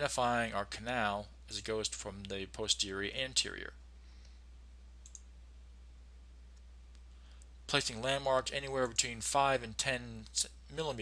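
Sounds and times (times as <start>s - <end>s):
low electrical hum: 0.0s - 11.0s
computer mouse clicks: 5.0s - 5.3s.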